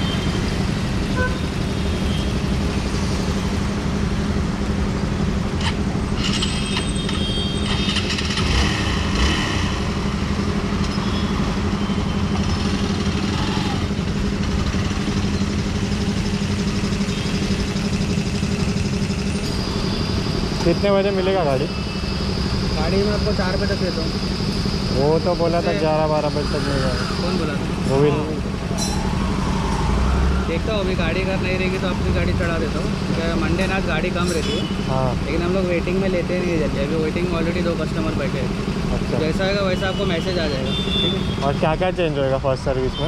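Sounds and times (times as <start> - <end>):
motorcycle engine idling: 9.9 - 25.2.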